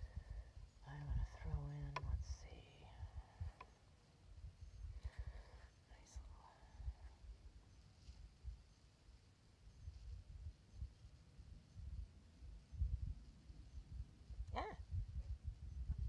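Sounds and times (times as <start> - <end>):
wind buffeting microphone: 11.8 - 16.0.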